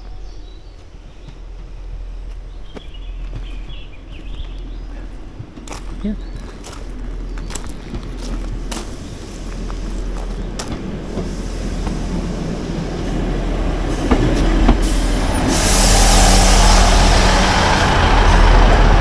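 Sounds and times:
diesel train engine and wheels: 0.0 - 19.0.

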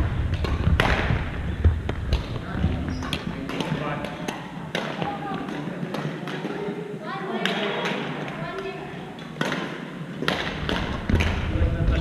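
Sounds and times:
echoing gymnasium rumble: 0.0 - 12.0
racket striking shuttlecock: 3.0 - 6.7, 9.2 - 11.4.

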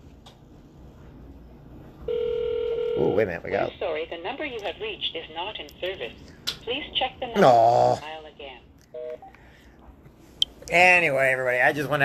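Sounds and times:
two-note telephone tone: 2.1 - 3.2, 9.0 - 9.3.

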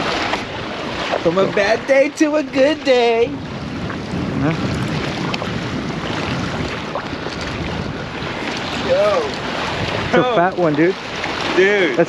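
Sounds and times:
waves washing against rocks: 0.0 - 12.0
wind buffeting microphone: 0.0 - 12.0.

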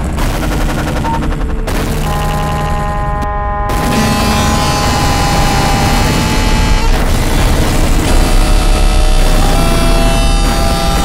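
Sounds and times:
distorted noise music: 0.0 - 11.0.

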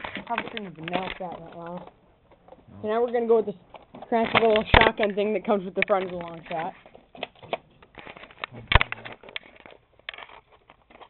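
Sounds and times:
plastic clicks and knocks: 0.0 - 11.0.

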